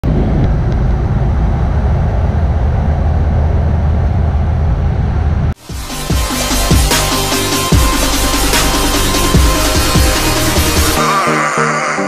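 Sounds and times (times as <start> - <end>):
electronic music with a beat: 5.6 - 12.0.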